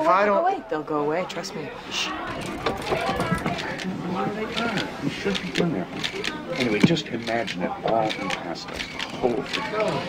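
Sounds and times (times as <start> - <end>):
muffled voices talking: 1.0 - 10.0.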